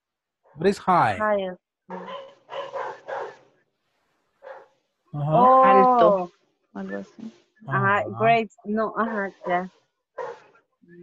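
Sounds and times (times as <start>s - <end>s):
dog barking: 1.9s - 3.4s, 4.4s - 4.7s, 10.2s - 10.5s.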